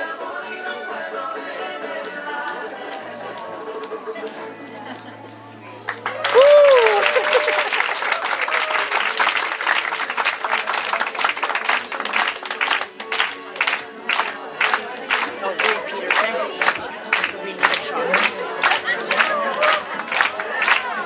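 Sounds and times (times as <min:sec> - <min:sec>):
audience applause and cheering: 0:05.8 - 0:21.0
rhythmic clapping: 0:05.9 - 0:21.0
person whooping: 0:06.1 - 0:07.8.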